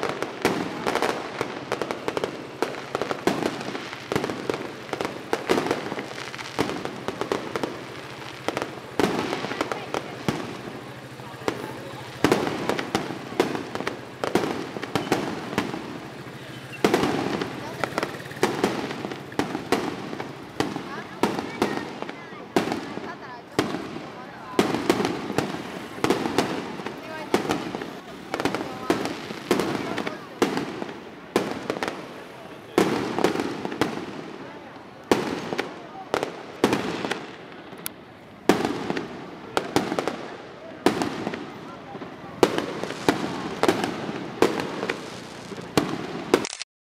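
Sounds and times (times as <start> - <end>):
fireworks bangs: 0.0 - 46.5.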